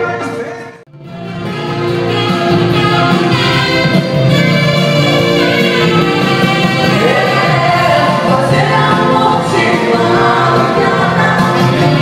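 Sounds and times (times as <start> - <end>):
saxophone playing: 0.9 - 8.4, 10.4 - 12.0
people singing: 6.4 - 12.0.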